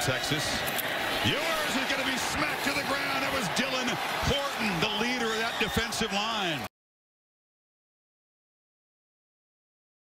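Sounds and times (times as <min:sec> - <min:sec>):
man giving sports commentary: 0:00.0 - 0:06.7.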